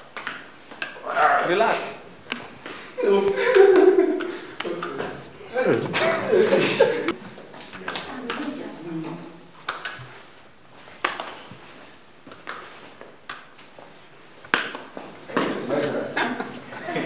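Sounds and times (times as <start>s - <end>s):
sharp hand slaps: 9.6s - 10.1s, 11.0s - 11.4s, 13.2s - 13.6s, 14.4s - 15.9s.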